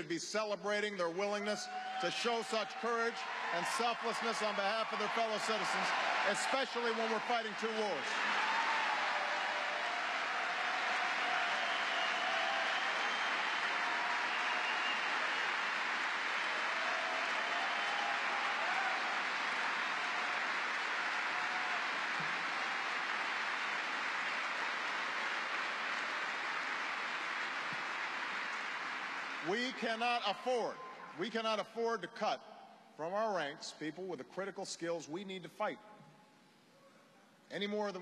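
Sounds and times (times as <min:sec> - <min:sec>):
audience cheering: 0:01.4 - 0:30.8
large audience applauding: 0:01.6 - 0:31.1.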